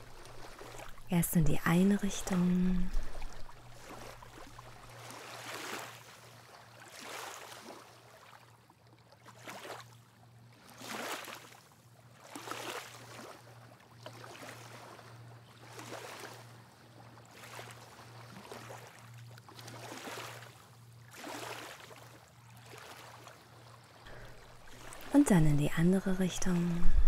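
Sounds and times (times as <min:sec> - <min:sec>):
small waves lapping on sand: 0:00.0 - 0:27.0.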